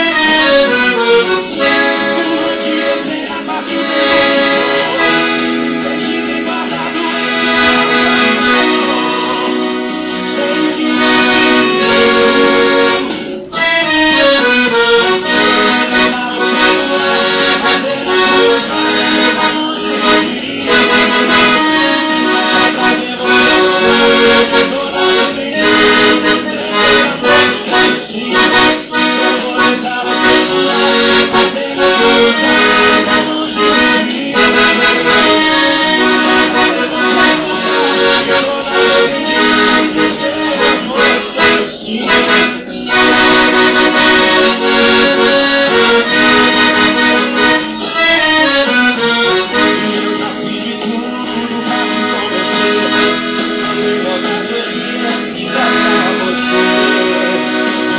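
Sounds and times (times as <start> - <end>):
piano accordion playing: 0.0 - 57.9.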